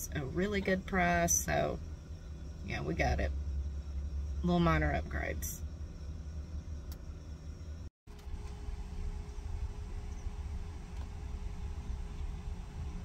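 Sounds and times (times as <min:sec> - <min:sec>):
engine and road noise in cabin: 0:00.0 - 0:13.0
faint steady hum: 0:00.0 - 0:13.0.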